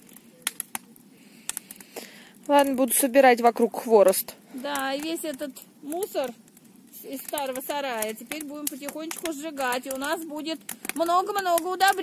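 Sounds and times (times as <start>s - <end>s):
low hiss of fire: 0.0s - 12.0s
sharp snaps of fire: 0.0s - 12.0s
wood fire crackling: 0.0s - 12.0s.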